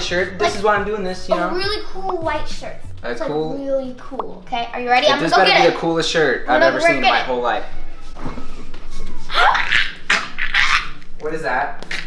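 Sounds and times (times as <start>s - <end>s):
girl laughing: 9.3s - 11.0s.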